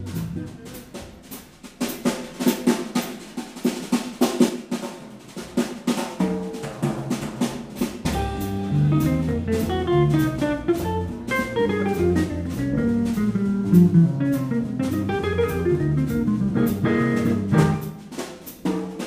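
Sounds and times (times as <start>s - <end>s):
double bass: 0.0s - 1.2s, 8.0s - 18.0s
drum kit: 0.0s - 19.0s
guitar playing quick runs: 8.0s - 18.1s.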